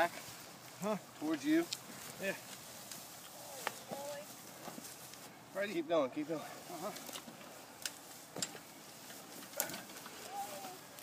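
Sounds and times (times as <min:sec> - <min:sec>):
branches snapping and knocking: 0:01.2 - 0:05.2, 0:06.8 - 0:11.0.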